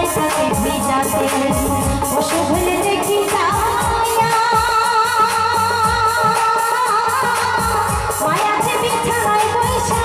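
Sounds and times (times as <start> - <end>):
instrumental accompaniment with steady beat: 0.0 - 10.0
woman singing with vibrato: 0.0 - 10.0.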